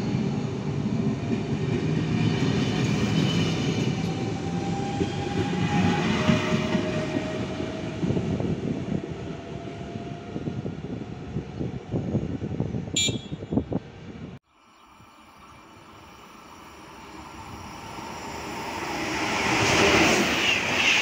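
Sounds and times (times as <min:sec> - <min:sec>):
train wheels rumbling on rails: 0:00.0 - 0:12.9, 0:16.9 - 0:21.0
faint train whine: 0:13.9 - 0:21.0.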